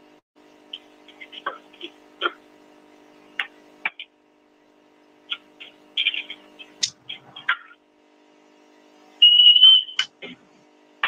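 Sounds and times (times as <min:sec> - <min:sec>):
high-pitched electronic beep: 0:09.2 - 0:10.0.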